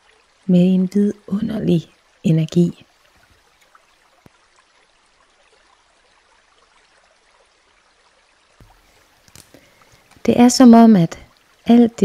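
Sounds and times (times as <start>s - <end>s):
faint trickling water: 0.0s - 12.0s.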